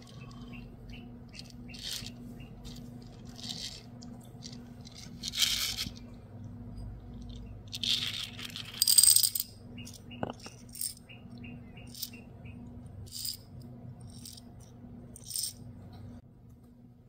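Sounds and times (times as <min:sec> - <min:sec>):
rhinestones rattling in jar: 0:01.3 - 0:06.1, 0:06.8 - 0:11.0, 0:11.9 - 0:12.2, 0:13.0 - 0:15.6
rhinestones clattering into plastic jar: 0:01.4 - 0:06.0, 0:07.1 - 0:11.0, 0:13.1 - 0:14.6, 0:15.2 - 0:15.6.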